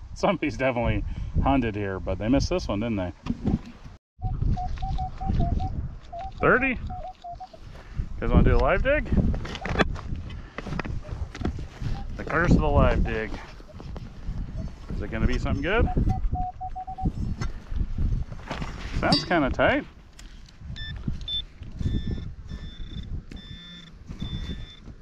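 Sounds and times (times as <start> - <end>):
metal detector beeping: 4.2 - 7.6, 11.8 - 12.6, 15.5 - 17.2, 20.8 - 24.9.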